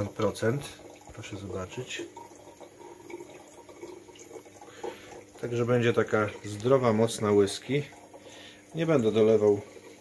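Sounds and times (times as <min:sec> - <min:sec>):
faint trickle of running water: 0:00.0 - 0:10.0.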